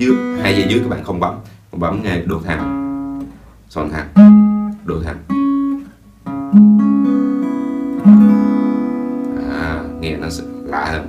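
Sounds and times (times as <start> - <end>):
acoustic guitar chords: 0.0 - 11.0.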